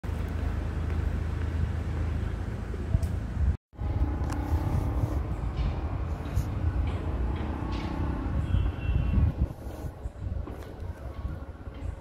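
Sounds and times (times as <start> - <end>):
wind buffeting microphone: 2.8 - 12.0.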